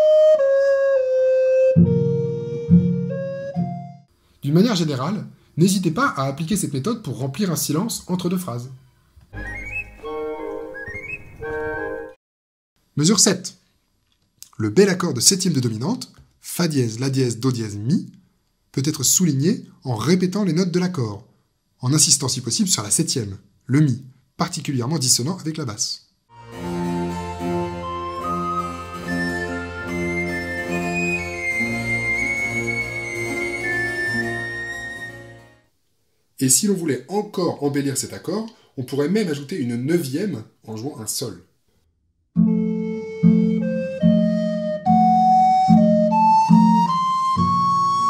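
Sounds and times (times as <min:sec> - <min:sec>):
high woodwind melody: 0:00.0 - 0:04.1, 0:09.3 - 0:12.2, 0:26.3 - 0:35.6, 0:42.4 - 0:48.0
held accompanying chords: 0:26.3 - 0:35.6, 0:42.4 - 0:48.0.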